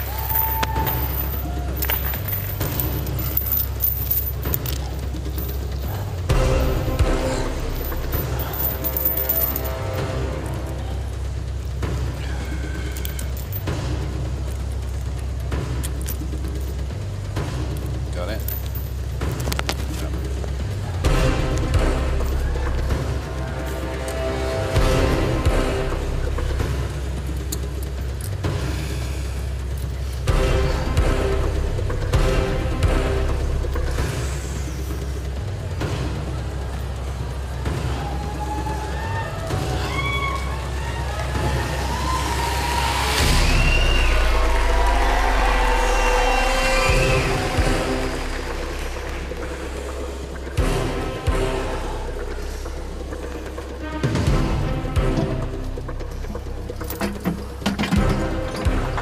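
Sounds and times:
audience whooping and cheering: 0.0s - 2.1s, 36.6s - 50.5s
dramatic stage music: 4.4s - 9.0s, 9.6s - 59.0s.

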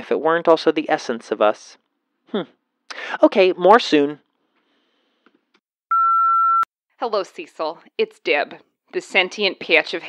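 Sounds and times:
voicemail beep: 5.9s - 6.7s.

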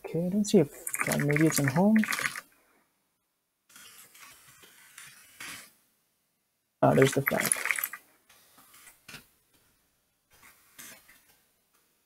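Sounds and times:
person speaking: 0.0s - 2.4s, 6.8s - 8.0s.

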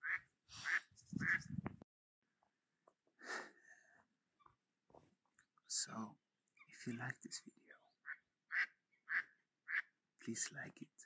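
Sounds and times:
duck quacking: 0.0s - 1.5s, 8.1s - 9.9s.

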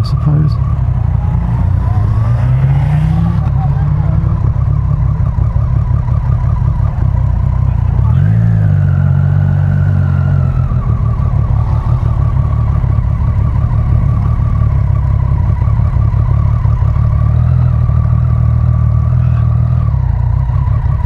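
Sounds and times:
motorcycle engine at low speed: 0.0s - 21.0s.

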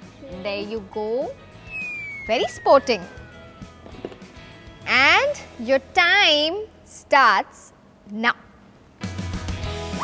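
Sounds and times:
whistle-like tone gliding downward: 1.7s - 3.8s.

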